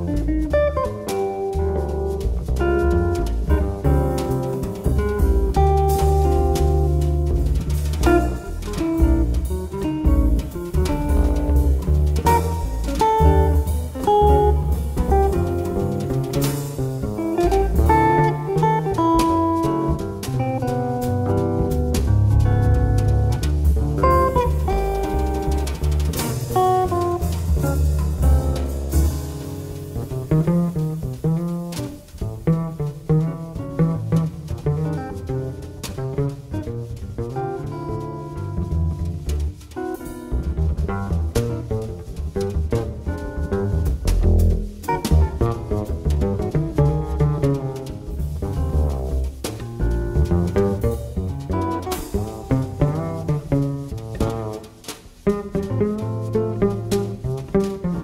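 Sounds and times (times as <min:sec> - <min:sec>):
drum kit with cymbals: 0:00.0 - 0:58.0
walking bass line: 0:00.0 - 0:58.0.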